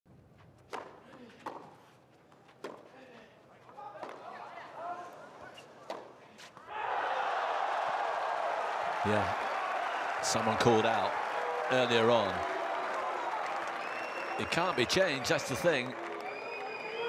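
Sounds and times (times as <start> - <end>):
crowd cheering and applause: 6.7 - 17.0.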